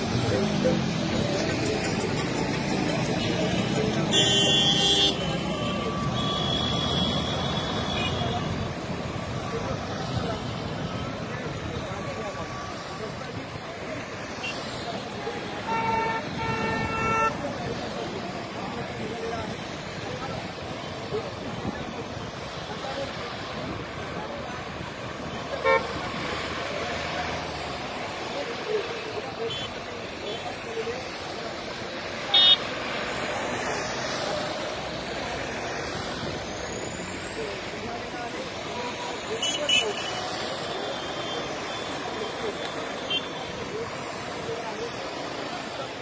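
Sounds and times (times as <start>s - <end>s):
road traffic drone: 0.0s - 46.0s
vehicle horns tooting: 3.2s - 8.6s, 15.5s - 17.6s, 25.4s - 26.1s, 32.2s - 32.7s, 38.9s - 43.7s.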